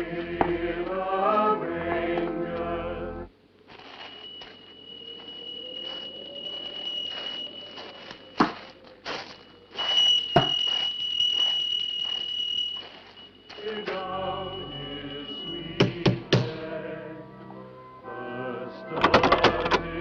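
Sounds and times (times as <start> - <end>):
soft crunches: 3.6 - 14.0
high thin whistling tone: 3.8 - 16.0.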